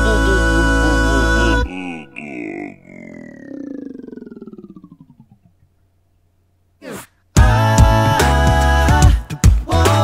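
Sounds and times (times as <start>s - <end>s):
buzzing voice sliding down: 1.4s - 5.6s.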